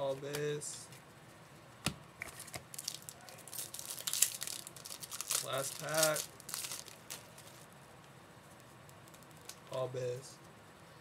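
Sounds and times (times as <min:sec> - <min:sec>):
card pack wrapper crinkling and tearing: 0:02.3 - 0:07.7, 0:08.9 - 0:09.8.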